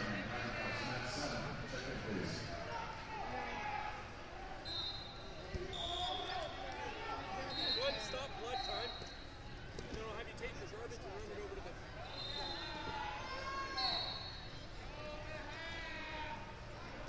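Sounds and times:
chatter of voices in gym hall: 0.0s - 17.0s
referee whistle blasts: 4.6s - 6.6s, 7.4s - 9.4s, 12.0s - 14.6s.

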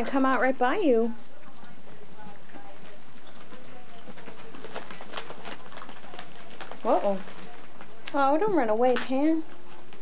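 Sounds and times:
ferrets rustling in plastic tube: 0.0s - 10.0s.

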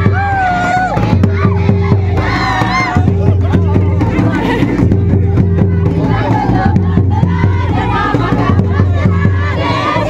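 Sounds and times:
crowd shouting and whooping: 0.0s - 3.2s
folk dance music: 0.0s - 10.0s
quick steady drumbeat: 0.0s - 10.0s.

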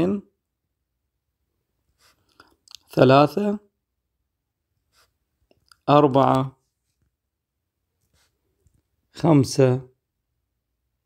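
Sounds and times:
person speaking: 0.0s - 0.4s, 1.9s - 3.8s, 4.8s - 7.2s, 8.1s - 10.1s.

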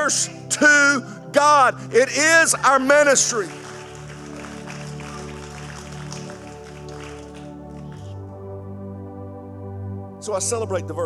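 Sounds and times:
ambient keyboard pad chords: 0.0s - 11.0s.

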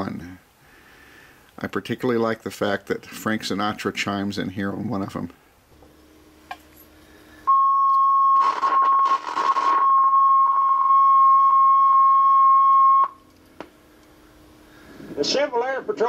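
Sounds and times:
tape hiss: 0.0s - 16.0s
steady high beep tone: 7.5s - 13.2s.

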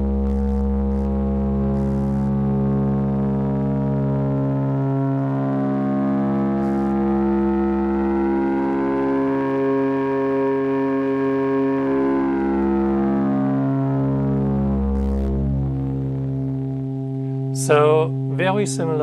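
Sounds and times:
synth drone: 0.0s - 19.0s.

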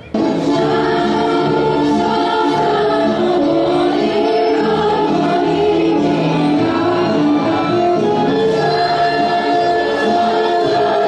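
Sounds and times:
women singing together: 0.2s - 11.0s.

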